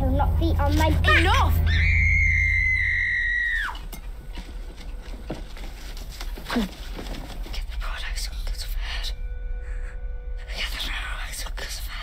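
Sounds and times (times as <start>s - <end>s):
shrill high-pitched tone: 0.9s - 3.8s.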